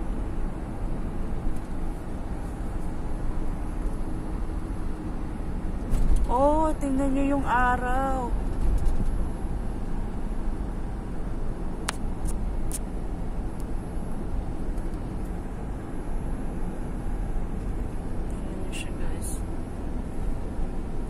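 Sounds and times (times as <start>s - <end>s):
car cabin road noise: 0.0s - 21.0s.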